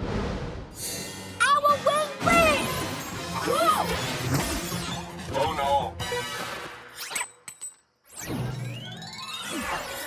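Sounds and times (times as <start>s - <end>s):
cartoon action music: 1.4s - 6.8s.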